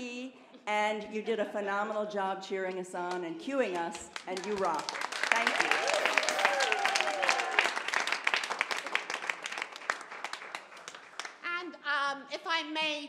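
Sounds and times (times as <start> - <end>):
audience applauding: 4.1 - 11.4.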